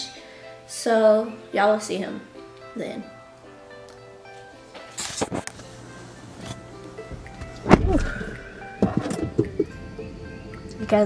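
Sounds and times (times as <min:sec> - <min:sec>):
background music: 0:00.0 - 0:11.0
heavy thump: 0:07.4 - 0:09.6.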